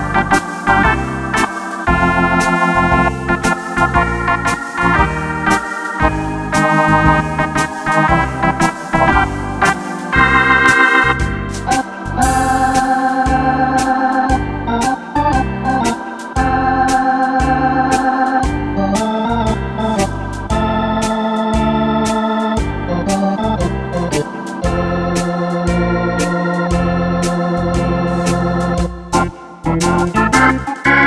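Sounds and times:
organ chords and melody: 0.0 - 31.0
pulsing bass line: 0.0 - 31.0
cymbal strokes: 9.9 - 13.3.

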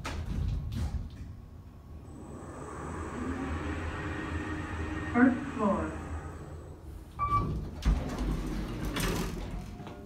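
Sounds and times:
elevator doors sliding open: 2.0 - 10.0
elevator beep: 7.2 - 7.7.

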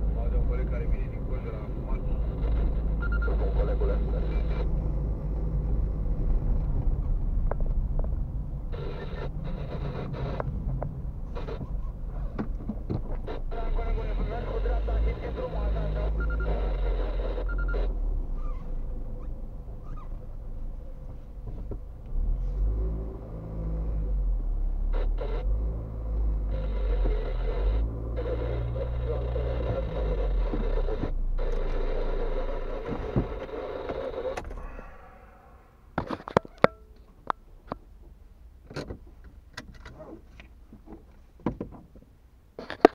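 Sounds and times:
car engine and road rumble: 0.0 - 42.9.

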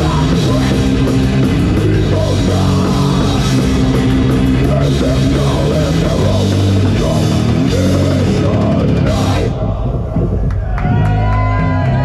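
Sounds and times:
death metal band playing: 0.0 - 12.0.

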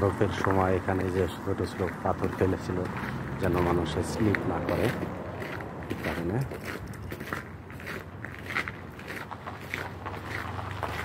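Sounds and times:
footsteps crunching on gritty paving: 0.0 - 11.0.

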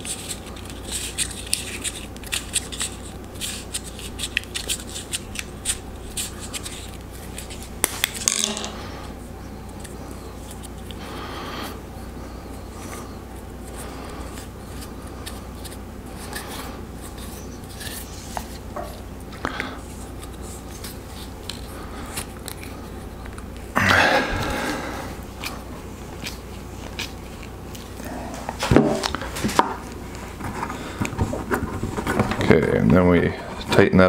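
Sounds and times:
tape rubbing on pipe fitting: 0.0 - 8.8, 12.4 - 19.0, 19.8 - 23.7, 25.3 - 28.0.

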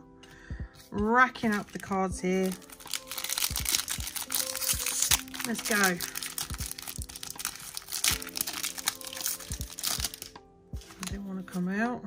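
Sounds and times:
soft background music: 0.0 - 12.0
cards and foil packaging crinkling: 1.4 - 11.2.

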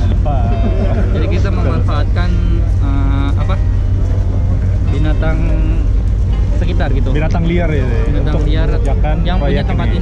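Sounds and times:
men talking: 0.0 - 10.0
steady low rumble: 0.0 - 10.0.

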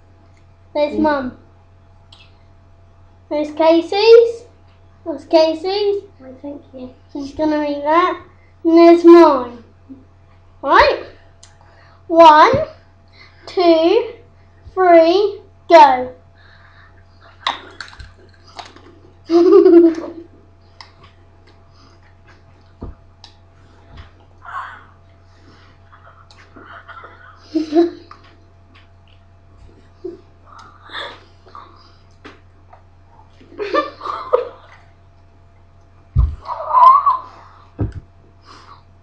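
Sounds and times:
person squealing: 24.4 - 25.0, 36.4 - 37.7
low thump: 36.2 - 36.4.

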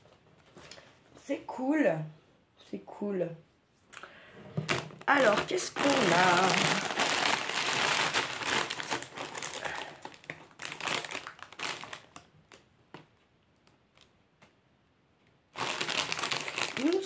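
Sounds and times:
food packaging crinkling: 4.6 - 12.6, 15.5 - 17.0.

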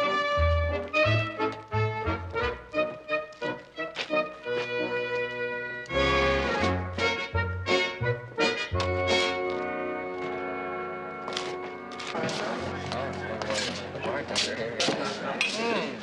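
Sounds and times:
background music: 0.0 - 14.8
crowd chatter: 11.3 - 16.0.

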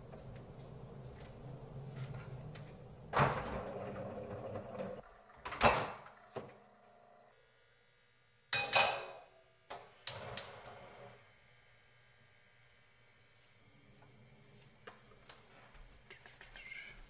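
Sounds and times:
pan ringing on gas hob: 8.5 - 9.2.

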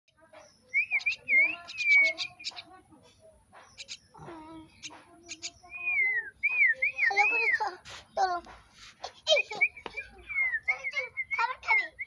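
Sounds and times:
young birds harsh begging calls: 0.3 - 8.0, 8.7 - 12.0
bird whistled notes: 0.7 - 2.6, 5.3 - 7.6, 9.6 - 12.0.

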